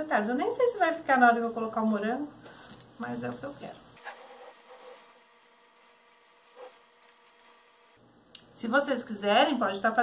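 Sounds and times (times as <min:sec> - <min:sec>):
soft knife scrape: 0:04.0 - 0:05.2.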